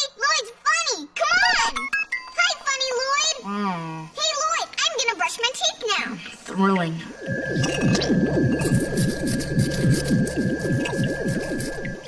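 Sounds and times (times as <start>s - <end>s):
electronic warbling hum: 6.6s - 12.0s
high held electronic tone: 7.1s - 12.0s.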